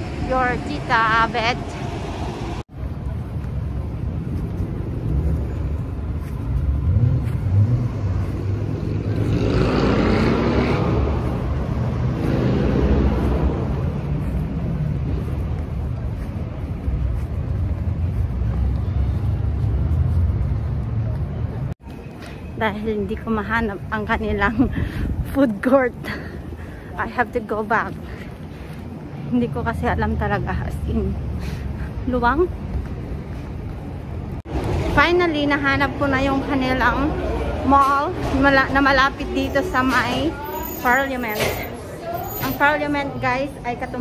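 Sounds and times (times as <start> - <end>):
road traffic rumble: 0.0 - 44.0
vehicle passing close: 4.8 - 15.6.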